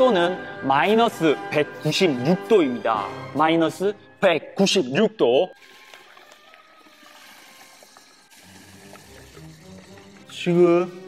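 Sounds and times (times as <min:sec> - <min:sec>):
liquid nitrogen hissing: 0:05.6 - 0:11.0.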